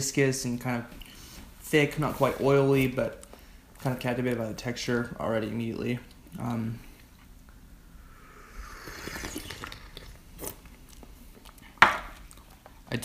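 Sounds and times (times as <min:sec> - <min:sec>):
person slurping tea: 0:08.0 - 0:10.6.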